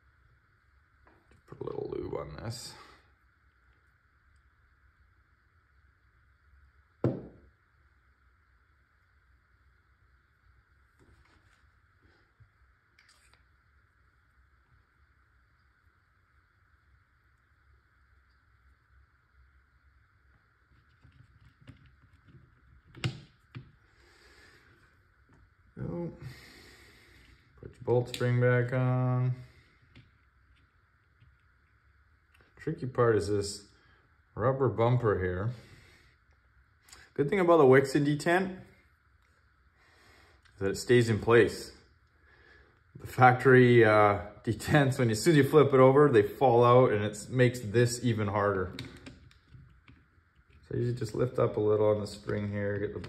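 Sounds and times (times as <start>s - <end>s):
faint steady hiss: 0.0s - 53.0s
small handling noises: 10.8s - 13.6s, 20.2s - 25.8s, 27.2s - 32.7s, 47.4s - 53.0s.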